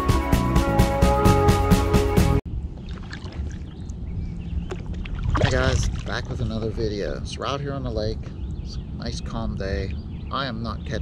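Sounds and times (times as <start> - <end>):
steady low rumble: 2.5 - 11.0
paddle splashing in water: 4.7 - 6.4.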